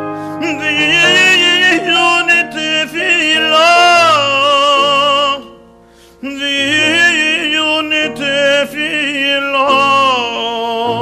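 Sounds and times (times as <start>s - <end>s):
man singing long note with vibrato: 0.0s - 5.6s, 6.2s - 11.0s.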